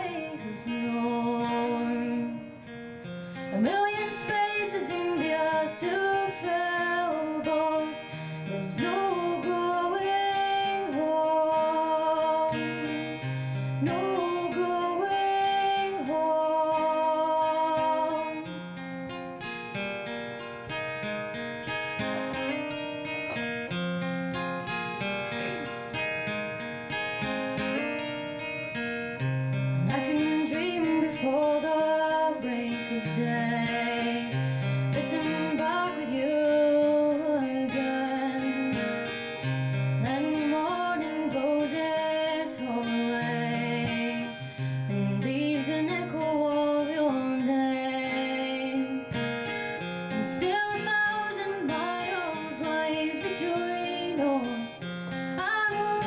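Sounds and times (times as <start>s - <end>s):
acoustic guitar playing: 0.0s - 56.0s.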